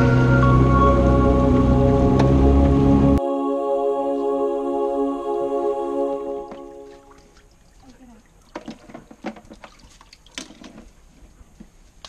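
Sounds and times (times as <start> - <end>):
background music: 0.0 - 7.2
water splashes: 6.1 - 11.1.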